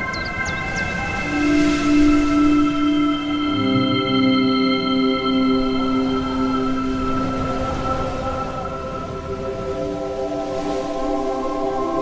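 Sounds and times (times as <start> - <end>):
synth drone chord: 1.2 - 8.0.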